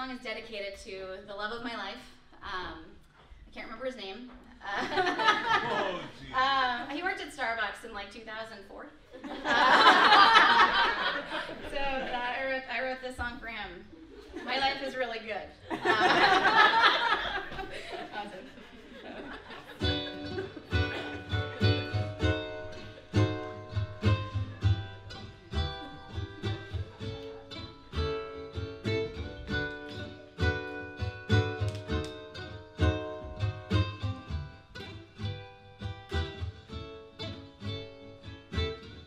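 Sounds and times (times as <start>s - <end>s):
ukulele strumming: 19.5s - 39.0s.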